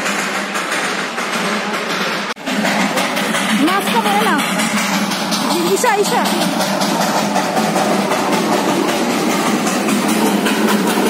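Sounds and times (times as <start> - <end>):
steam locomotive hissing: 0.0 - 11.0.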